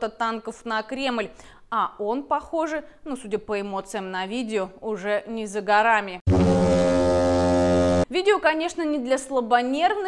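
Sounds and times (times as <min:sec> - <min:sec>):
low horn-like tone: 0:06.3 - 0:08.1.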